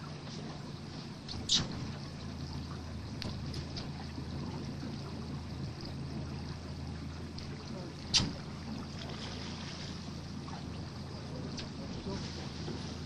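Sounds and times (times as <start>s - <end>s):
boat motor idling hum: 0.0s - 13.0s.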